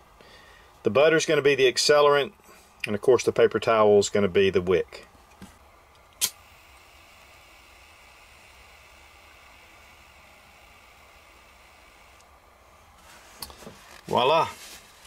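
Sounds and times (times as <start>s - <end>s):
faint gas hiss: 0.0s - 3.2s, 3.8s - 15.0s.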